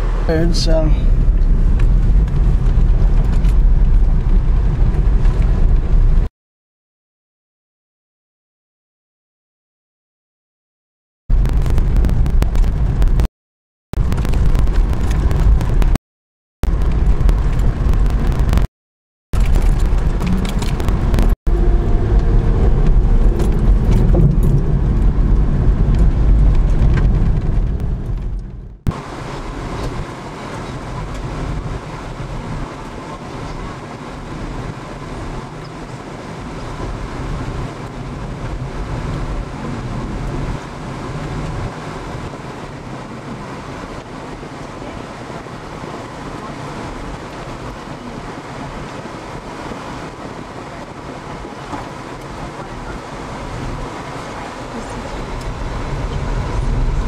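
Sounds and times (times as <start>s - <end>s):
road and wind noise: 0.0s - 6.3s, 11.3s - 13.3s, 13.9s - 16.0s, 16.6s - 18.7s, 19.3s - 57.0s
vehicle rumbling on dirt road: 0.0s - 6.3s, 11.3s - 13.3s, 14.0s - 16.0s, 16.6s - 18.7s, 19.3s - 57.0s.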